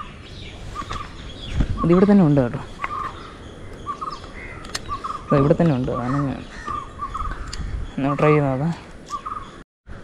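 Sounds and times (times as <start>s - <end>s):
bird calling: 0.0s - 9.6s.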